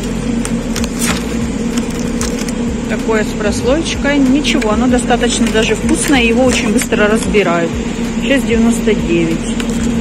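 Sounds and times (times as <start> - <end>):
plastic wrap crackling: 0.0 - 3.0, 9.5 - 10.0
refrigerated display case hum: 0.0 - 10.0.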